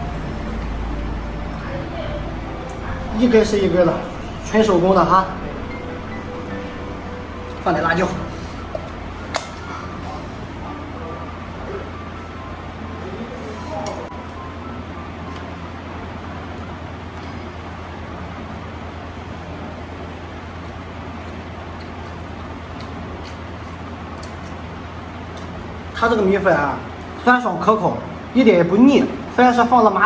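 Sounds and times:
low background rumble: 0:00.0 - 0:13.4
steady low hum: 0:00.0 - 0:30.0.

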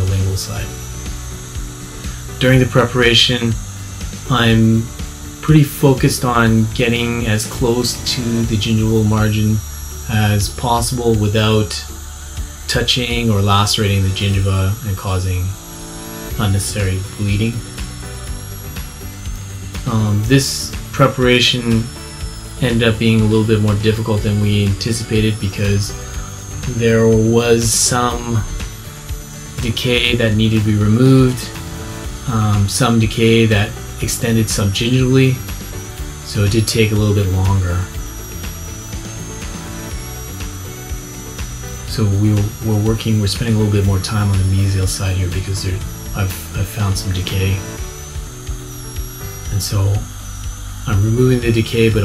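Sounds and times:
background music: 0:00.0 - 0:52.0
dental drill whining: 0:00.0 - 0:52.0.

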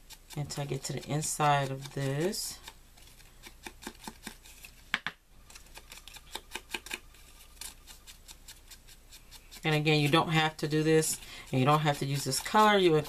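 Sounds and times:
ink applicator scratching paper: 0:00.0 - 0:04.7, 0:05.5 - 0:13.0.

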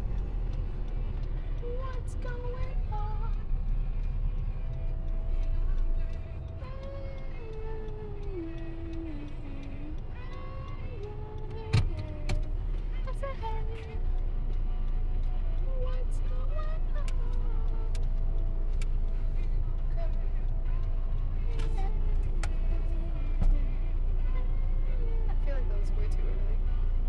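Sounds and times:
car engine and road rumble: 0:00.0 - 0:27.0.

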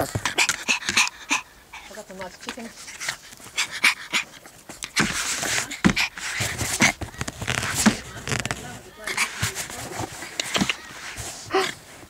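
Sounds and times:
dog panting: 0:00.0 - 0:11.8.

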